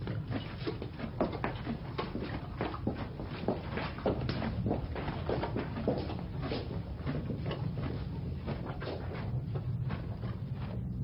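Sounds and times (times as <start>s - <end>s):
low rumble: 4.4s - 11.0s.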